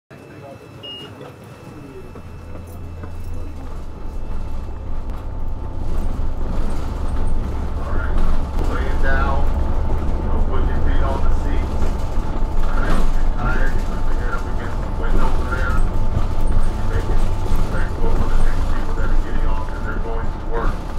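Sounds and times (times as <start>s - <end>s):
bus engine and road rumble: 0.1s - 20.9s.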